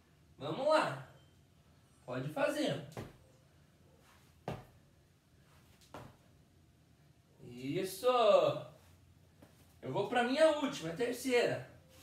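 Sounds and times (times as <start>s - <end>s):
sneakers thudding on tiled floor: 2.9s - 3.3s, 4.4s - 4.8s, 5.8s - 6.3s.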